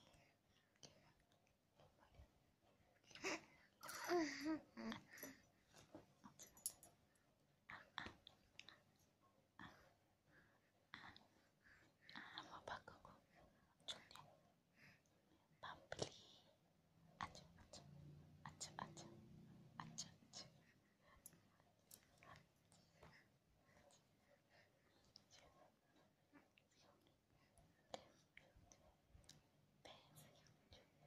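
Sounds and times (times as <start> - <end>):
faint whispering: 0.0 - 2.4, 7.6 - 31.0.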